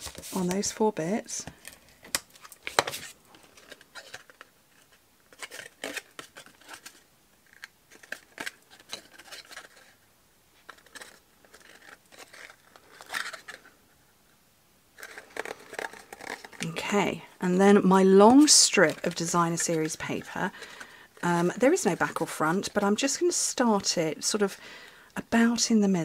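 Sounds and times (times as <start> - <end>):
card rustling and scraping: 0.0 - 0.8, 1.4 - 14.1, 15.0 - 17.1, 18.0 - 23.2.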